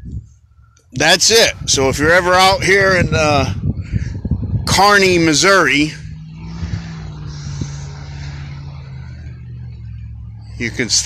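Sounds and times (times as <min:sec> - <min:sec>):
engine hum: 0:00.0 - 0:11.0.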